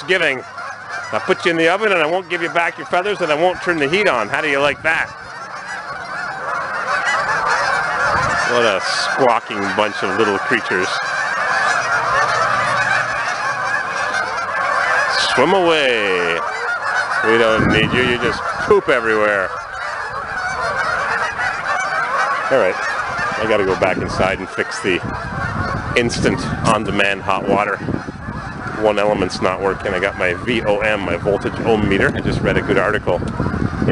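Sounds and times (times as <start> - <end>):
geese squawking and honking: 0.0 - 33.9.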